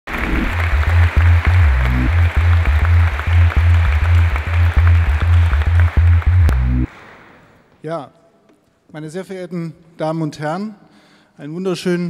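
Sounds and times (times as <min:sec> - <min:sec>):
intro music with deep bass: 0:00.1 - 0:06.9.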